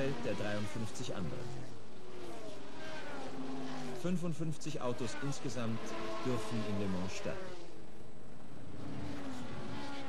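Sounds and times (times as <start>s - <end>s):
racing car engines passing: 0.0s - 10.0s.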